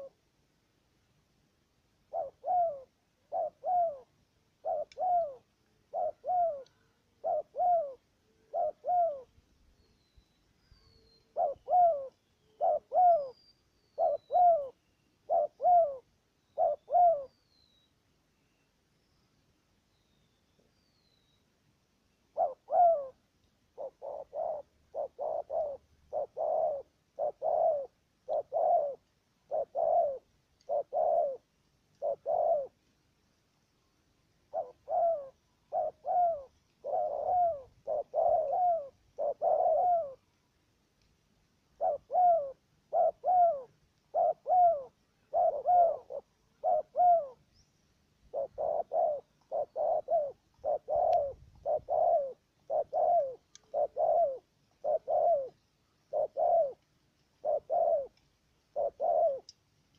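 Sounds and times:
doves cooing: 0.0 - 0.2, 2.0 - 9.4, 10.7 - 17.4, 22.3 - 32.8, 34.4 - 40.4, 41.7 - 47.5, 48.2 - 59.6.

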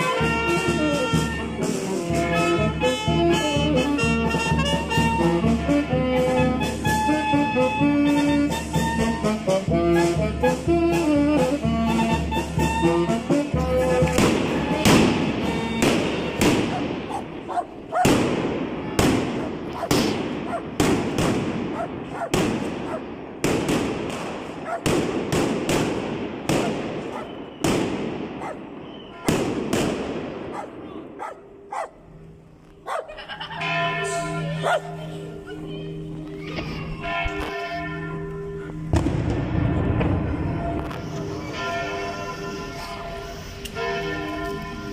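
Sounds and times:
brass street band playing march: 0.0 - 32.3, 37.0 - 44.9
firecracker bangs: 14.1 - 30.9, 38.9 - 41.6.

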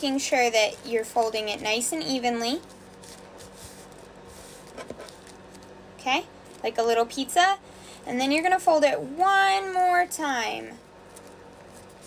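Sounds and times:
paper filter rustling and creasing: 0.0 - 5.8, 11.0 - 12.0.

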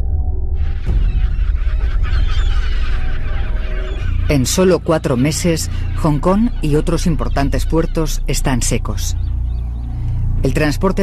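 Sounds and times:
deep steady rumble: 0.0 - 11.0
birds squawking: 0.6 - 11.0.

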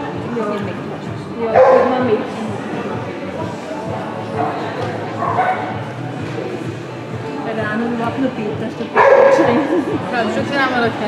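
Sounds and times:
background music: 0.0 - 11.0
voices: 0.0 - 11.0
dog barking: 1.6 - 2.0, 5.2 - 5.8, 9.0 - 9.6.

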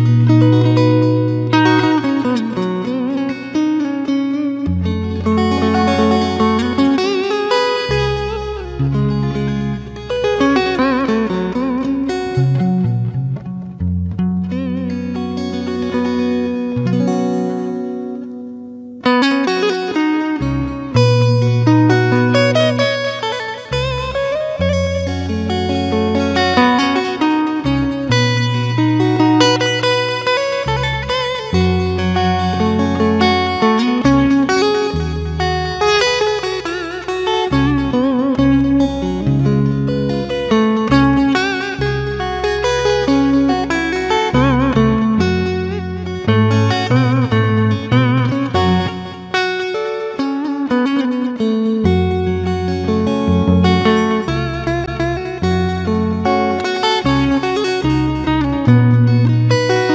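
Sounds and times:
slow lead guitar melody: 0.0 - 59.9
sustained bass notes: 7.9 - 17.1, 23.8 - 49.4.

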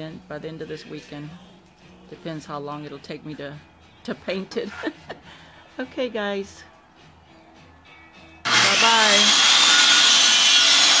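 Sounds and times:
circular saw cutting wood: 8.5 - 11.0.

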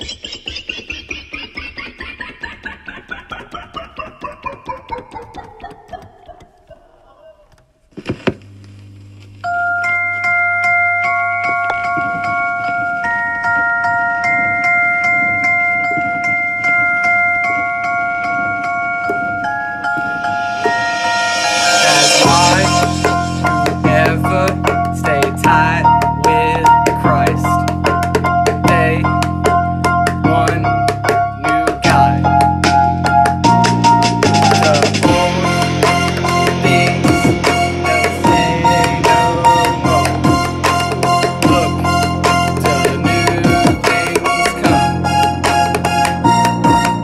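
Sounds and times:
beat with held chords and bass: 0.0 - 7.0, 18.6 - 47.0
electronic keyboard descending run: 0.0 - 7.4, 9.4 - 47.0.

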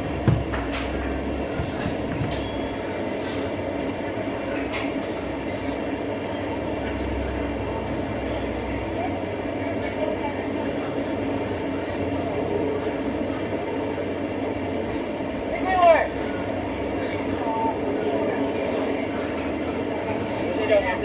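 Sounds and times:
heavy vehicle engine idling: 5.4 - 19.2.

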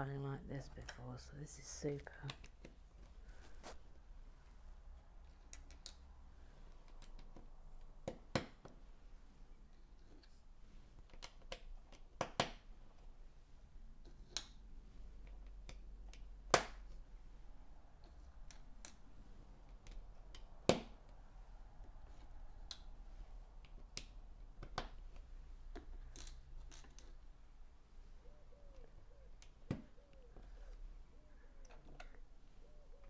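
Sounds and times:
plastic bricks clicking into place: 5.3 - 6.0.

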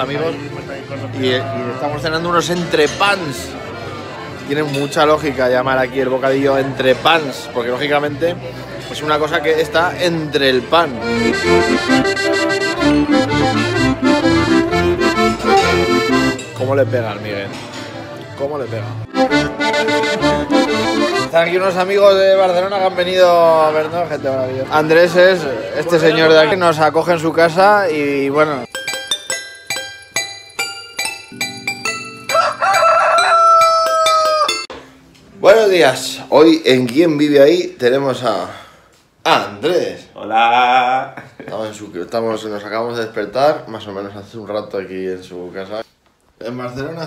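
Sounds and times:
accordion playing folk tune: 0.0 - 4.4, 10.1 - 17.3, 18.0 - 23.0
soft music: 8.9 - 25.1, 26.0 - 37.6
rooster crowing: 32.3 - 34.7.

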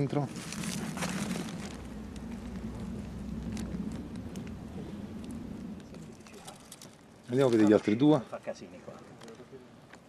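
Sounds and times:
plastic bag crinkling: 0.0 - 4.6, 5.2 - 8.1
steady low rumble: 0.0 - 7.2.

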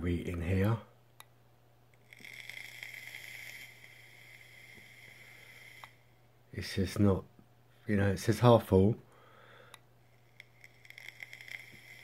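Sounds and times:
vape draw hiss with whistle: 2.1 - 6.1, 10.2 - 12.0.

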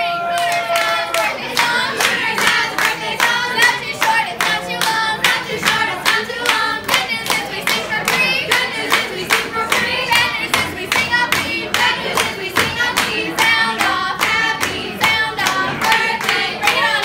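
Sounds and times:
rhythmic clapping: 0.0 - 17.0
women singing together: 0.0 - 17.0.

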